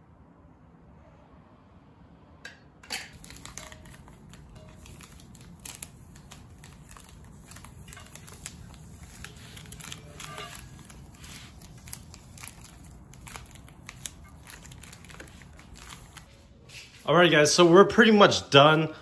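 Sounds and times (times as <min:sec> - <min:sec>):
tape peeling and tearing: 0:03.1 - 0:16.4
tape crumpling crackles: 0:03.1 - 0:17.1.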